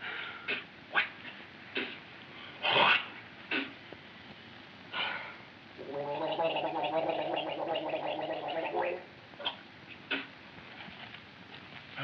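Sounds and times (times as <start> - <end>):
person gargling: 5.8 - 9.1.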